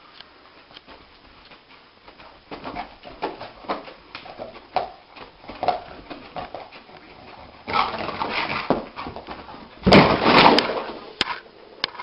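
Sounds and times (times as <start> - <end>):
paws scrabbling on carpet: 0.6 - 9.9
dog thumping into wall: 7.7 - 11.0.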